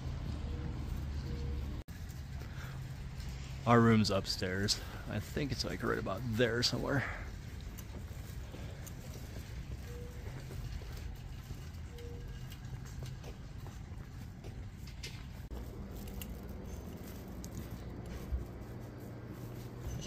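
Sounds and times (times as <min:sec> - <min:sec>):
footsteps on concrete: 0:04.8 - 0:20.0.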